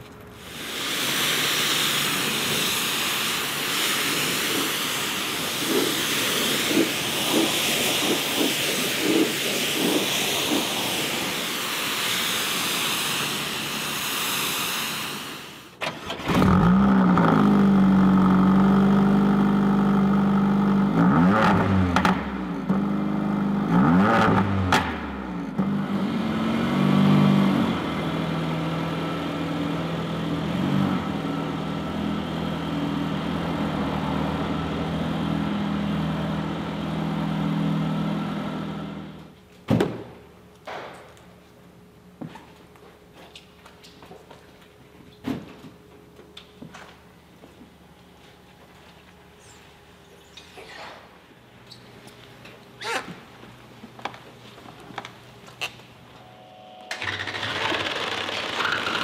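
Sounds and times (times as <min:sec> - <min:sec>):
pressure washer spray hissing: 0:00.4 - 0:15.8
car engine starting and revving: 0:15.9 - 0:39.2.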